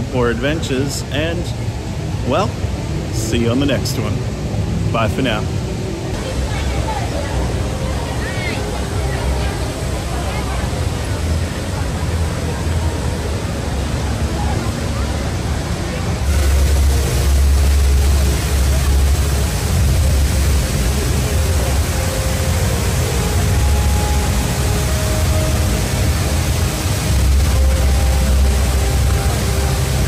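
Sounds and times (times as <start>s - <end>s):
indoor waterfall rushing: 0.0s - 30.0s
crowd murmuring: 4.9s - 30.0s.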